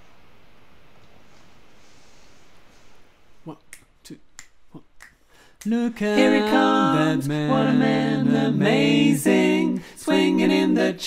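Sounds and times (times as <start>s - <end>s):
soft vocal sounds: 3.4s - 11.0s
quiet finger snaps: 3.7s - 5.8s.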